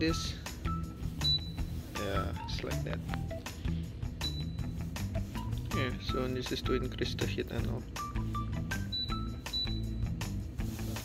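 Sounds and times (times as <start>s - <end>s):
music with steady beat: 0.0s - 11.0s.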